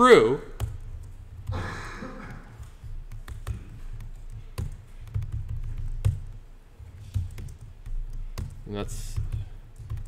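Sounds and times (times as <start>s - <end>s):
computer keyboard key clicks: 3.0s - 6.4s, 7.0s - 10.0s.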